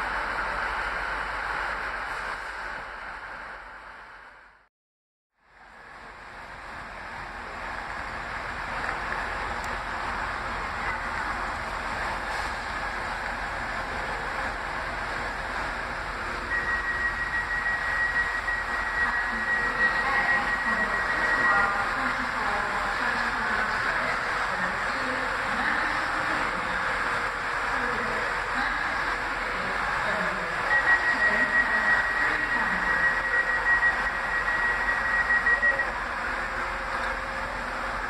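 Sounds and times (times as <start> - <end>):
train engine and fans humming: 0.0 - 4.7, 5.4 - 38.0
steady high whine: 5.6 - 38.0.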